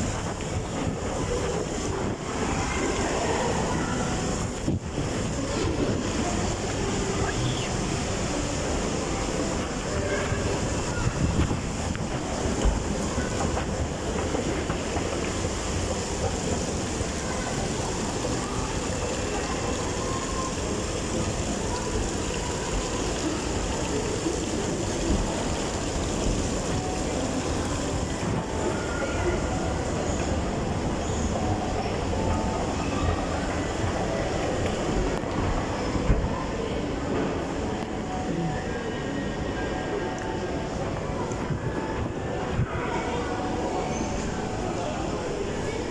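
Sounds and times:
water running down rock waterfall: 0.0s - 38.6s
constant wash of noise: 0.0s - 45.9s
faint distant voices: 0.0s - 45.9s.

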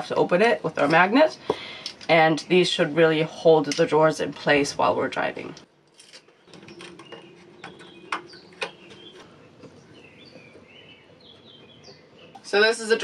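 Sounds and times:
faint bird chirps: 6.3s - 12.4s.

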